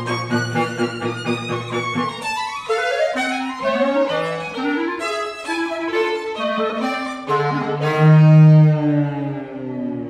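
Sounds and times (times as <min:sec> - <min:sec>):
clarinet violin and cello trio: 0:00.0 - 0:10.0.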